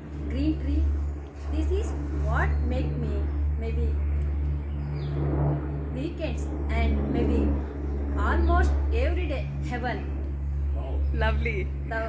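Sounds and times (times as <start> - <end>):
steady low hum: 0.0 - 12.0
person talking: 6.0 - 7.6.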